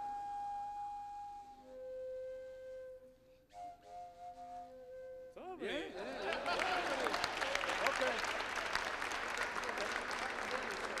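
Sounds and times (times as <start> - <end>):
people applauding: 6.1 - 11.0.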